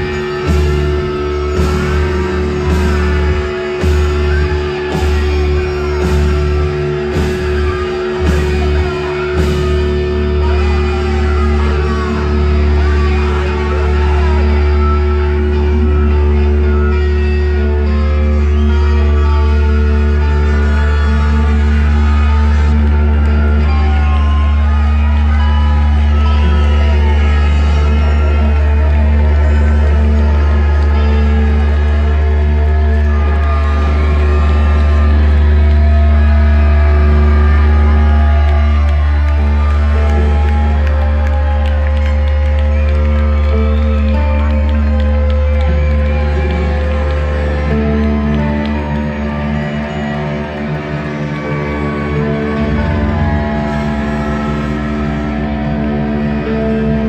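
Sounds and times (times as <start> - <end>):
loud steady low drone: 0.0 - 57.0
brass and reed section playing: 51.2 - 57.0.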